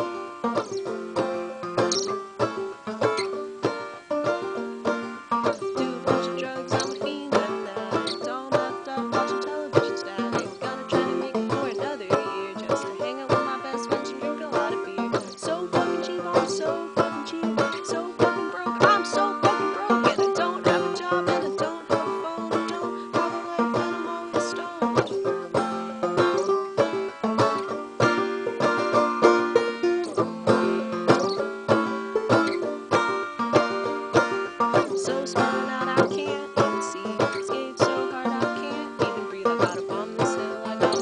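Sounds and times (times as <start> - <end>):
banjo plucking: 0.0 - 41.0.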